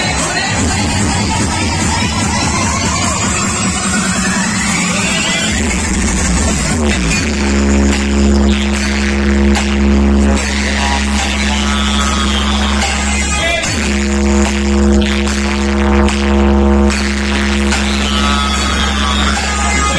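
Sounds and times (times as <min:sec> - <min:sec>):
loud music with heavy bass: 0:00.0 - 0:19.9.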